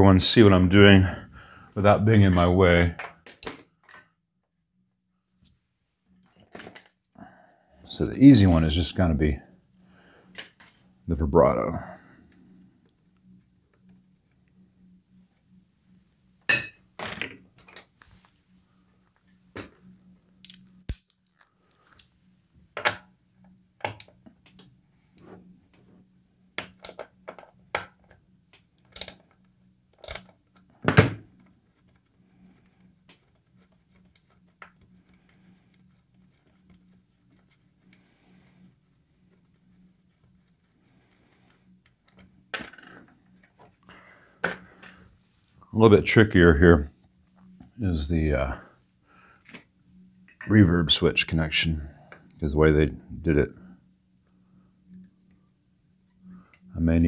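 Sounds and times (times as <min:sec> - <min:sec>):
faint low hum: 0:00.0 - 0:57.0.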